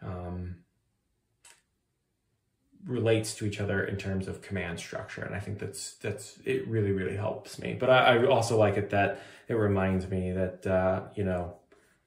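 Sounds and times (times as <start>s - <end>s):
man talking: 0.0s - 0.6s, 2.8s - 11.5s.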